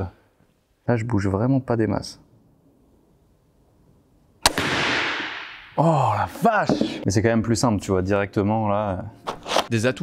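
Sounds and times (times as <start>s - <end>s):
crossbow firing snap: 4.4s - 5.8s.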